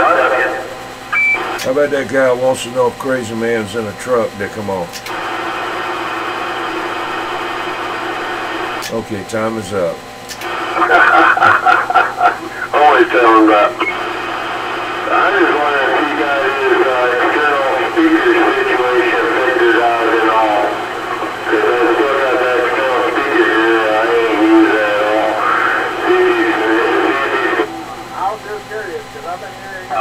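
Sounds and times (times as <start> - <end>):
garbled voice over radio: 0.0 - 0.7, 10.4 - 14.1, 15.0 - 30.0.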